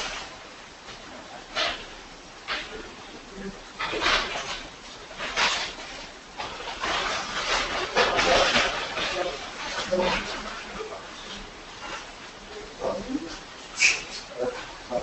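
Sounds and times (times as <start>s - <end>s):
muffled talking: 7.8s - 15.0s.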